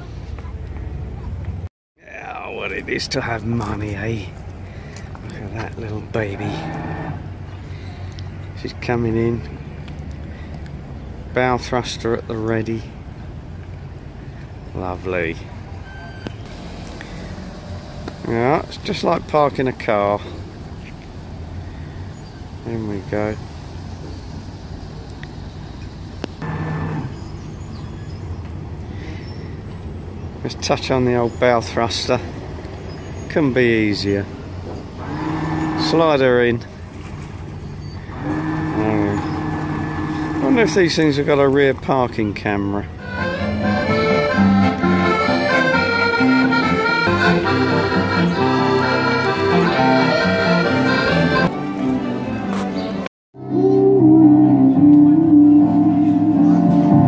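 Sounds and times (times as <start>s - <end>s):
boat engines idling: 14.2s - 25.2s, 26.4s - 30.0s, 30.6s - 51.5s
accordion: 26.4s - 27.2s, 43.0s - 57.0s
keyboard: 38.1s - 41.2s, 43.0s - 57.0s
electric guitar: 43.1s - 51.6s, 53.4s - 57.0s.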